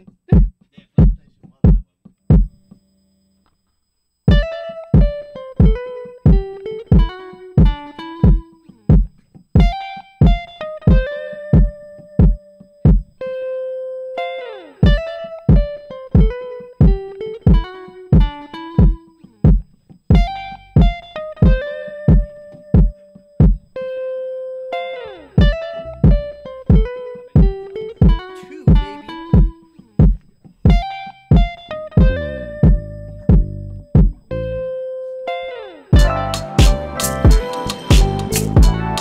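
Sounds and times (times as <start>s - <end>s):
programmed drum beat: 0.0s - 2.6s, 4.3s - 13.2s, 14.8s - 23.7s, 25.4s - 34.3s, 36.0s - 39.0s
electric guitar melody: 4.3s - 39.0s
low bass notes: 32.0s - 34.7s, 36.0s - 39.0s.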